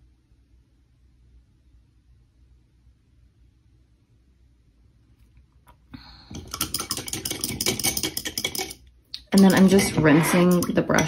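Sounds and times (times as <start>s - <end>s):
paintbrush clinking in water cup: 6.3s - 11.0s.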